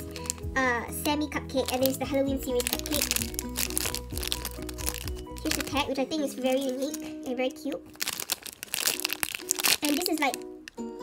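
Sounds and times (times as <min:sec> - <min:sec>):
plastic bag crinkling: 0:00.0 - 0:10.8.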